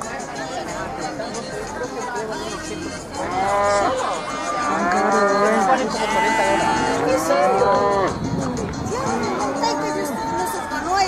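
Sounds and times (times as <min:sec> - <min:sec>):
cattle mooing: 0:03.3 - 0:04.0, 0:04.6 - 0:08.2.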